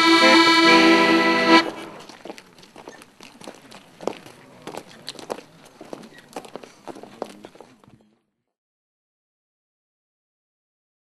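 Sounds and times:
footsteps of people walking: 0.5s - 8.4s.

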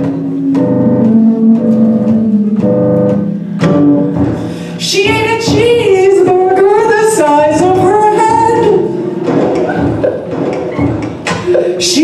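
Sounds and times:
woman singing wordless melody: 0.0s - 3.3s, 4.8s - 9.0s, 11.6s - 12.0s.

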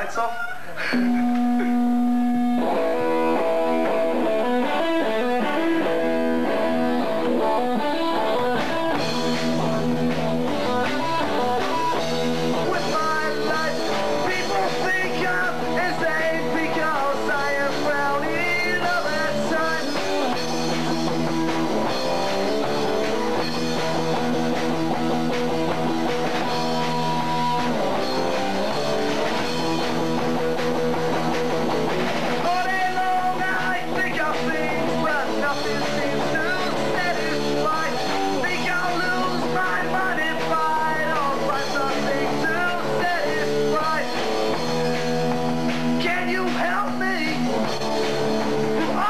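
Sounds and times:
drum kit: 0.0s - 49.0s
electric guitars: 0.7s - 49.0s
person singing: 10.5s - 20.4s, 32.4s - 44.3s, 46.0s - 47.7s, 48.7s - 49.0s.

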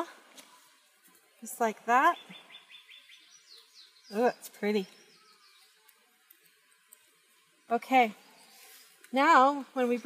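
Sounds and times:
small bird chirping: 0.4s - 9.5s.

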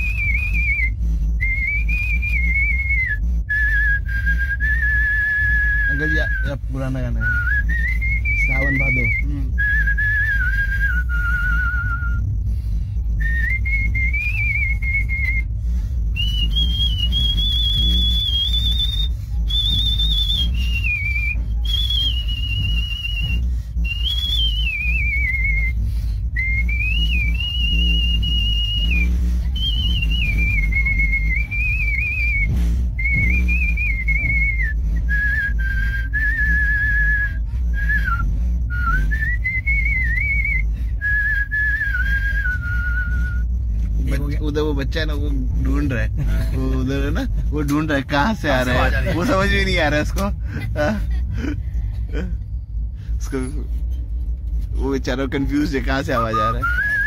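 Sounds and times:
man whistling a melody: 0.0s - 50.4s, 55.6s - 57.0s
train coach rumble: 0.0s - 57.0s.

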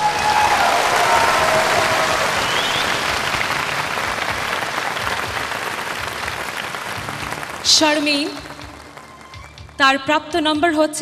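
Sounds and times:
large audience applauding: 0.0s - 9.8s.

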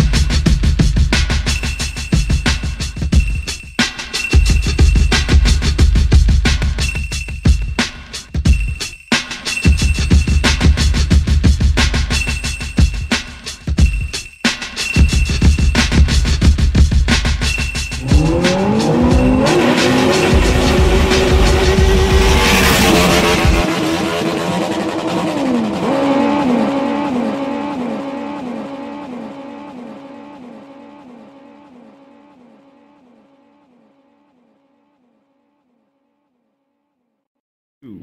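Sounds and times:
music with heavy bass: 0.0s - 30.2s
revving engine-like sound: 18.0s - 33.7s.

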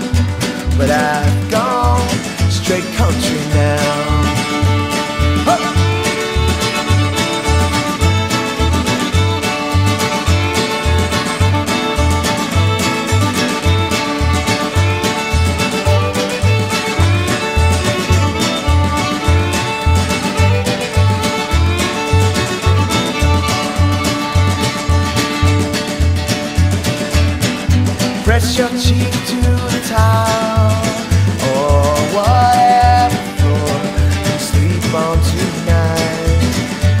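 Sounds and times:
fiddle: 0.0s - 37.0s
guitar: 0.0s - 37.0s.

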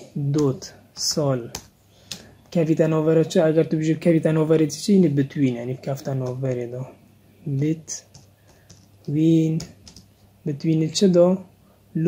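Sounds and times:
computer keyboard keystrokes: 8.1s - 8.9s, 9.6s - 10.1s.

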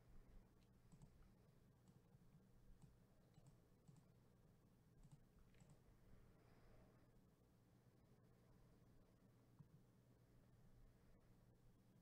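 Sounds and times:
keyboard and mouse clicks: 0.6s - 2.0s, 2.8s - 4.2s, 5.0s - 5.8s.

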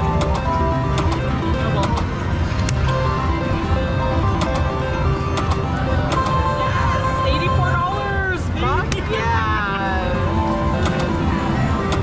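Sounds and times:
slot machine jingle: 0.0s - 8.8s, 9.8s - 12.0s.

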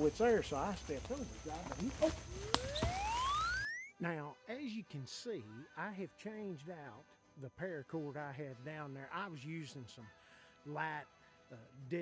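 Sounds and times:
whistle-like tone gliding upward: 2.4s - 4.0s.

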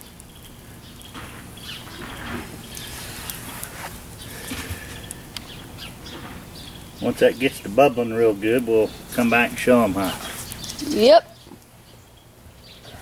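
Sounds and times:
steady low hiss: 0.0s - 13.0s.

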